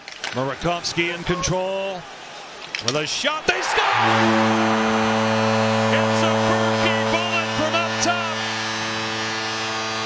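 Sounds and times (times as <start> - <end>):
crowd cheering: 3.2 - 10.0
goal horn buzzing: 3.6 - 10.0.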